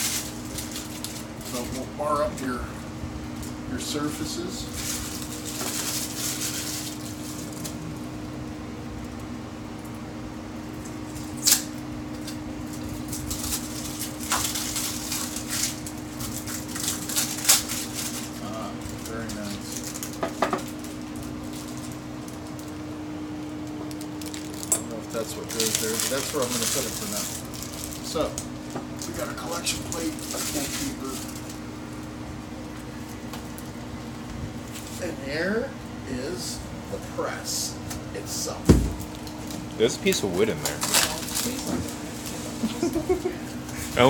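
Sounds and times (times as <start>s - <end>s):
packaging rustling: 0.0s - 1.8s, 4.7s - 7.8s, 12.8s - 22.8s, 23.6s - 31.6s, 38.9s - 42.5s
steady low hum: 0.0s - 44.0s.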